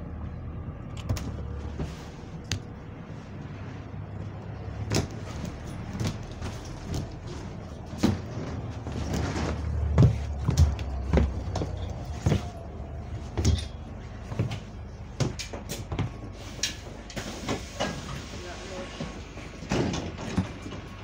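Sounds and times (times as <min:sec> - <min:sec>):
bus engine drone: 0:00.0 - 0:21.0
knocks and clunks inside bus: 0:00.0 - 0:21.0.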